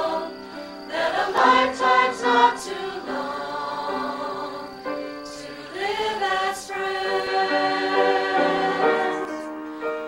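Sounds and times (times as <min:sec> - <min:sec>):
group singing in chorus: 0:00.0 - 0:09.6.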